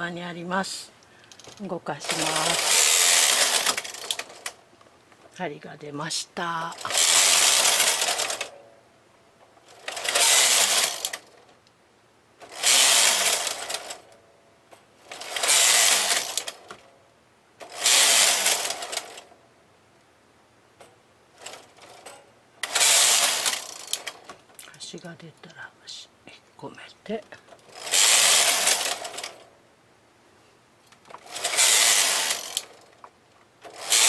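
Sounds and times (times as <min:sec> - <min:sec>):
knitting machine carriage rattling: 0:01.3 - 0:04.6, 0:06.4 - 0:08.6, 0:09.6 - 0:11.5, 0:12.4 - 0:14.1, 0:15.0 - 0:16.9, 0:17.6 - 0:19.3, 0:20.8 - 0:24.5, 0:27.5 - 0:29.5, 0:30.9 - 0:33.0, 0:33.6 - 0:34.0.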